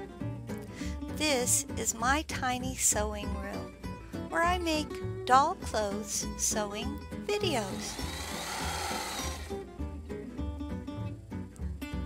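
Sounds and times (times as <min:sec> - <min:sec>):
background music: 0:00.0 - 0:12.0
sewing machine running: 0:07.6 - 0:09.6.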